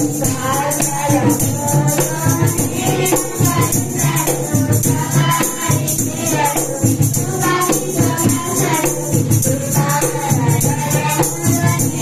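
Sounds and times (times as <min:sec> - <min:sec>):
children's song group singing: 0:00.0 - 0:12.0.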